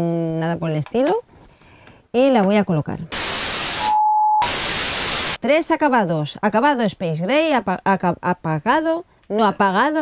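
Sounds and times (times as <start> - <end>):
television static hiss: 3.1 - 5.7
short steady beep: 3.7 - 4.5.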